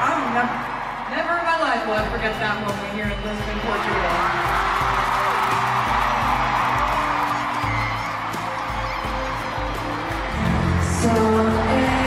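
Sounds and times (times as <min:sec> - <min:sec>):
stadium crowd cheering and screaming: 0:00.0 - 0:12.0.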